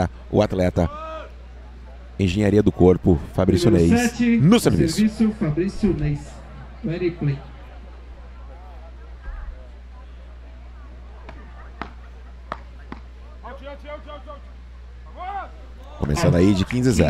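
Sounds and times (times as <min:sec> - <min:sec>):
players and crowd shouting: 0:00.7 - 0:01.4, 0:13.4 - 0:17.0.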